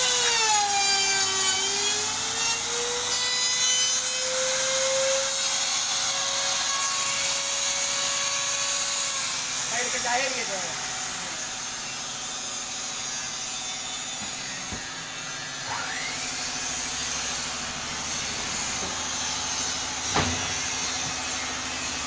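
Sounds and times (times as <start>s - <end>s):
power tools humming: 0.0s - 22.0s
rising whine: 10.9s - 22.0s
sharp knock: 20.1s - 20.5s.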